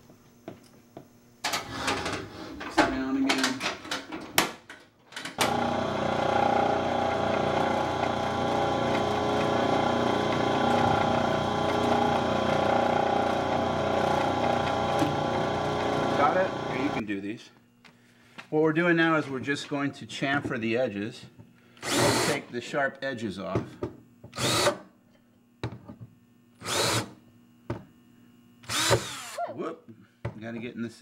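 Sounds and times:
milling machine humming: 0:05.4 - 0:17.0.

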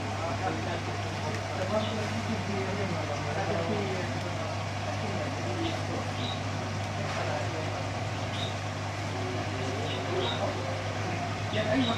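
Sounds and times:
air pump humming: 0:00.0 - 0:11.9.

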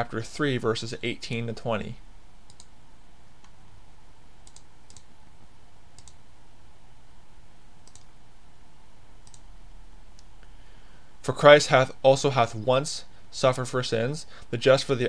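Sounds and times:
room hiss: 0:00.0 - 0:15.0
computer clicks: 0:02.5 - 0:02.8, 0:04.4 - 0:05.1, 0:06.0 - 0:06.2, 0:07.8 - 0:08.1, 0:09.2 - 0:09.5.

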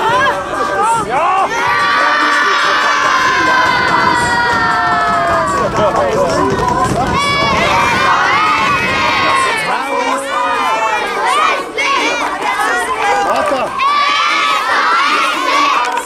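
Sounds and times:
boys cheering and shouting: 0:00.0 - 0:16.0.

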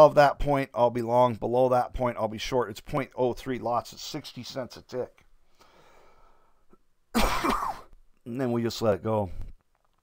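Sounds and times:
man coughing: 0:07.1 - 0:08.0.

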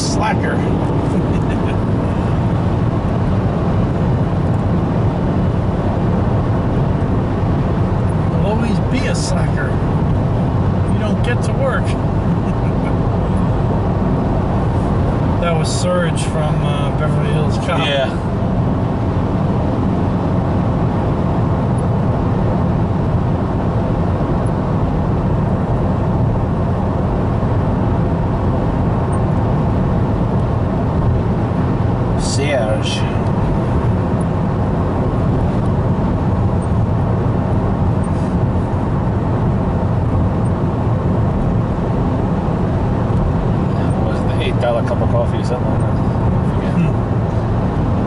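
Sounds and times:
car road and engine noise: 0:00.0 - 0:48.0.

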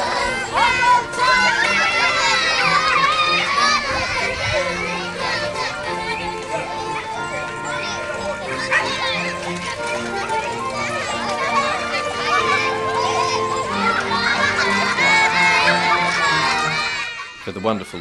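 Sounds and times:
background music of held notes: 0:00.0 - 0:18.0
children chattering and calling out: 0:00.0 - 0:18.0.

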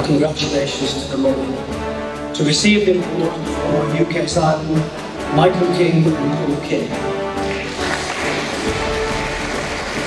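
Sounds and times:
background music: 0:00.0 - 0:10.0
audience applauding: 0:07.4 - 0:10.0.

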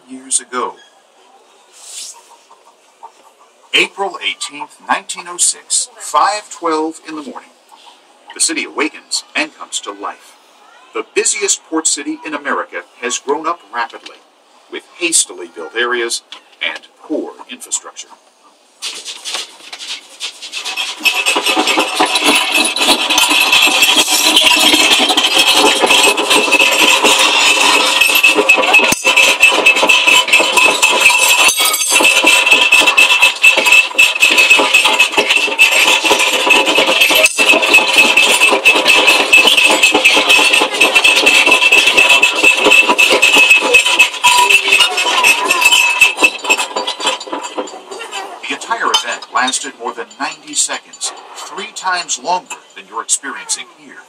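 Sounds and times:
loud continuous rattling din: 0:18.3 - 0:53.8
steady high ring: 0:20.7 - 0:47.8.

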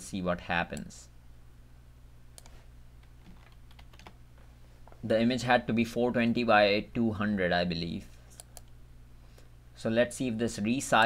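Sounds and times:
low electrical hum: 0:00.0 - 0:11.0
computer keyboard keystrokes: 0:03.2 - 0:04.2.

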